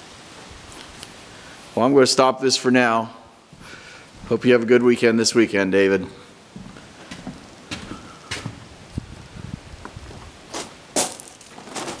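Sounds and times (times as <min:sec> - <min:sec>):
footsteps: 0:02.6 - 0:12.0.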